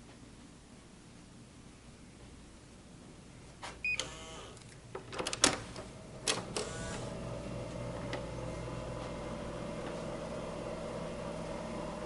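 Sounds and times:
keycard door lock beeping: 3.8 - 4.5
steady hum: 5.5 - 12.0.

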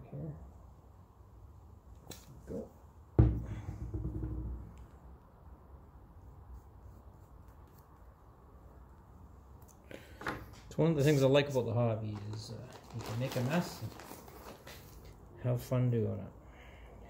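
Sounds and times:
loud thump: 3.2 - 4.8.

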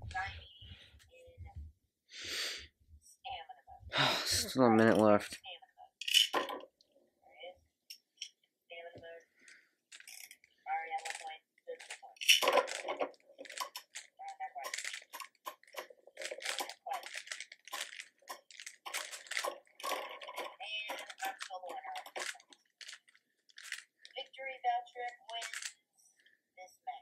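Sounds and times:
spinning tops clashing and scraping: 12.2 - 14.0, 14.6 - 22.4.

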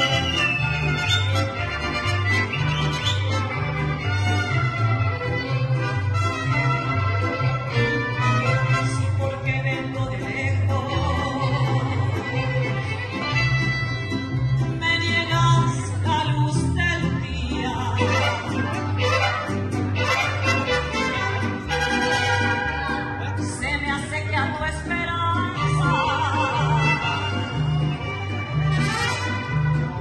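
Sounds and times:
mariachi band playing: 0.0 - 30.0.

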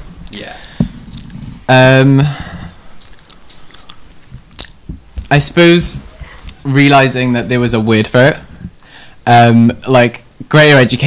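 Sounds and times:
mouth clicks and lip noises: 1.0 - 1.5, 2.9 - 4.9.

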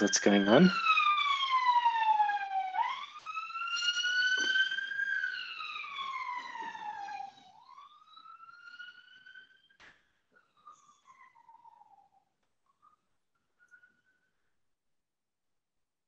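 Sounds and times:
emergency vehicle siren wailing: 0.0 - 12.2.

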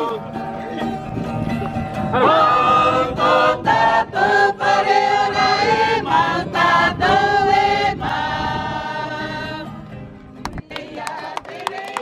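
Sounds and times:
group singing in chorus: 2.1 - 9.7, 10.5 - 12.0.

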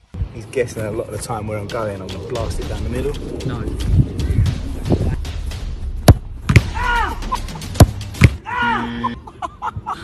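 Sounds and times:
football being kicked: 6.0 - 6.8, 7.7 - 8.4.

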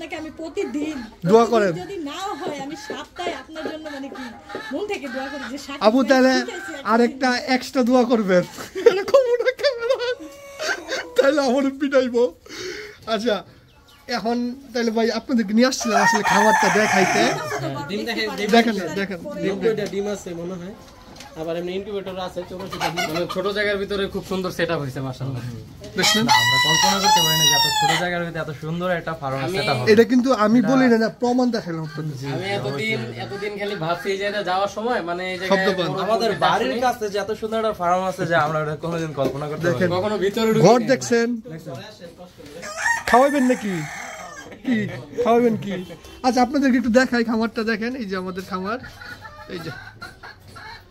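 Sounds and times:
chickens calling: 0.0 - 41.1, 42.1 - 50.9
rooster crowing: 15.8 - 17.8, 26.0 - 28.0, 42.6 - 44.6.

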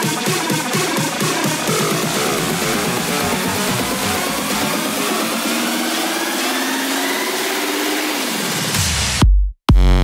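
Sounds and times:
held chord notes: 1.0 - 6.2
synth tone climbing: 1.6 - 8.5
white-noise riser: 1.8 - 8.8.

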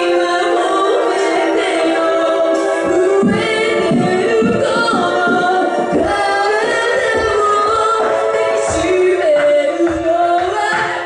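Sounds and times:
woman singing: 0.0 - 11.0
band music: 1.3 - 11.0
low drum hits: 2.8 - 7.8.

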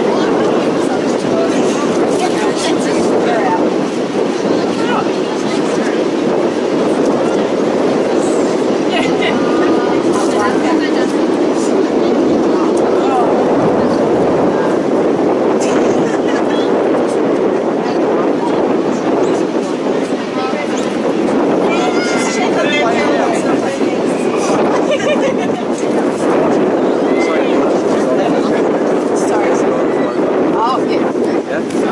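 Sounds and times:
wind rumble on microphone: 0.0 - 31.9
faint distant shouts: 21.6 - 23.2.

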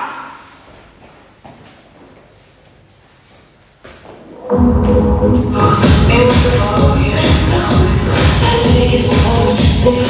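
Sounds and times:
echo of a shouted word: 0.0 - 0.6.

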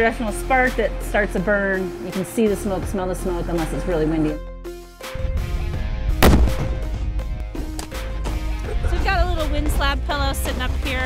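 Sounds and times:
background music: 0.0 - 11.0
explosion with echo: 6.2 - 7.1.

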